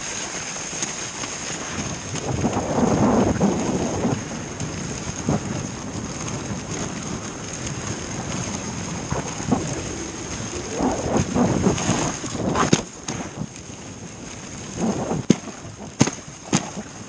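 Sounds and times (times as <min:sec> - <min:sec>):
sled runners hissing over snow: 0:00.0 - 0:17.0
wind rumbling on microphone: 0:00.0 - 0:17.0
light knocks from sled: 0:15.2 - 0:16.9.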